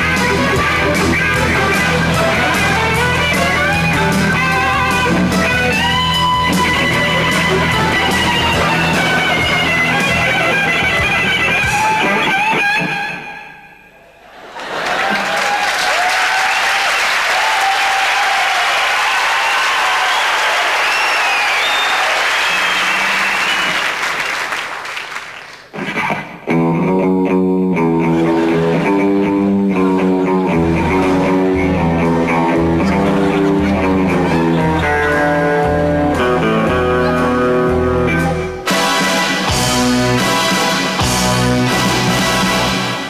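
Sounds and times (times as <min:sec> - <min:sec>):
electric guitar rock music: 0:00.0 - 0:13.6, 0:25.7 - 0:43.0
audience applause: 0:00.3 - 0:11.6, 0:14.3 - 0:25.8, 0:30.6 - 0:36.4.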